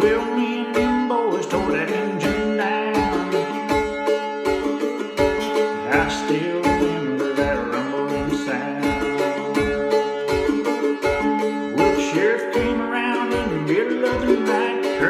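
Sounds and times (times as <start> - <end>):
mandolin picking: 0.0 - 15.0.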